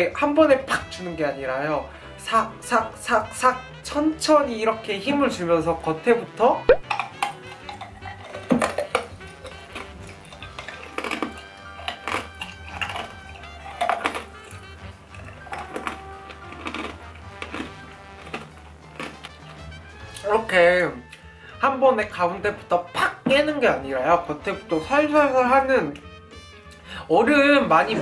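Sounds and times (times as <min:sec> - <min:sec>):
background music with bass: 0:00.0 - 0:28.0
ice being chewed: 0:06.7 - 0:20.3.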